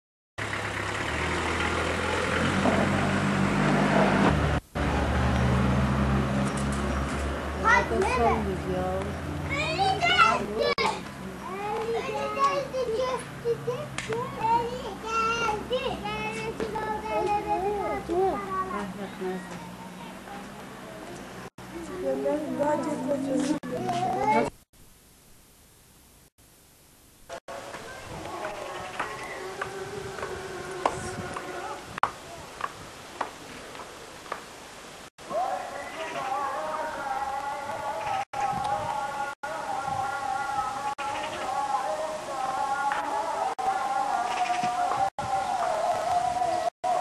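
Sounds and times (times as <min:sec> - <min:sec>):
children calling and chattering: 0:07.6 - 0:24.7, 0:27.5 - 0:30.2.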